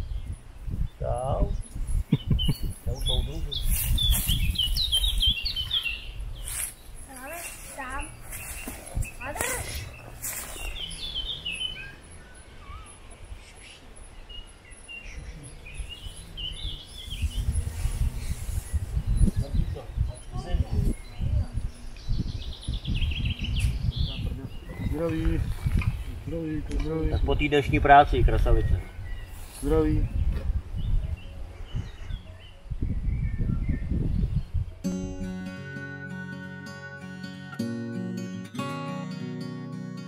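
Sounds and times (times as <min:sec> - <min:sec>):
songbirds singing trilled phrases: 0:00.0 - 0:40.0.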